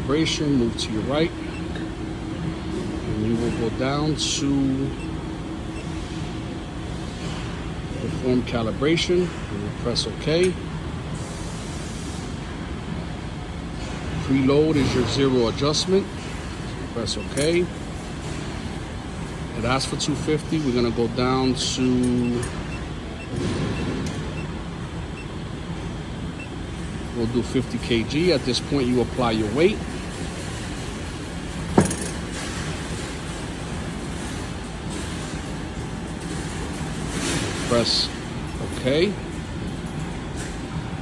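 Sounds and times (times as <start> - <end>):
low machinery hum and hiss: 0.0 - 41.0.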